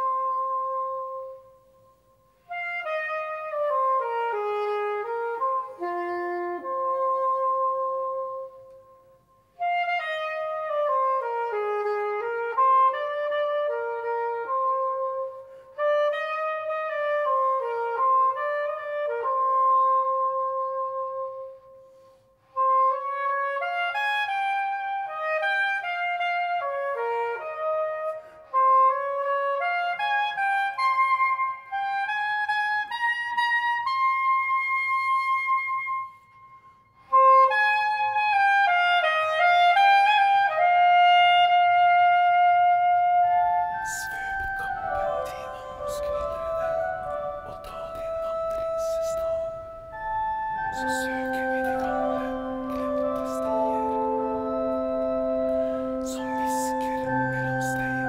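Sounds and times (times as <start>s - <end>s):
woodwind playing slow melody: 0.0s - 58.0s.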